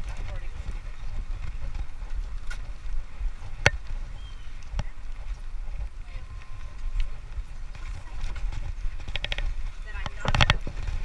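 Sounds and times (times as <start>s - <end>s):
bicycle tyres clacking on boards: 0.0s - 11.0s.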